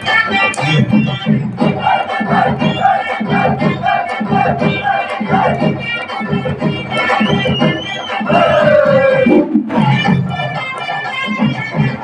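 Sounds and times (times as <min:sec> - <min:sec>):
crowd voices: 0:00.0 - 0:12.0
held melody line: 0:00.0 - 0:12.0
drum troupe drumming: 0:07.0 - 0:10.4.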